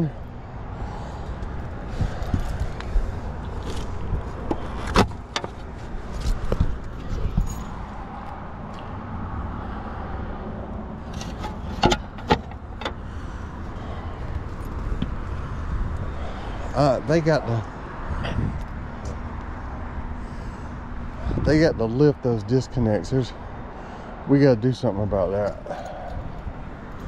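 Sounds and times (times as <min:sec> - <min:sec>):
road traffic rumble: 0:00.0 - 0:27.0
wind rumble: 0:00.6 - 0:21.8
handling clicks and knocks: 0:03.6 - 0:07.8, 0:11.1 - 0:13.0.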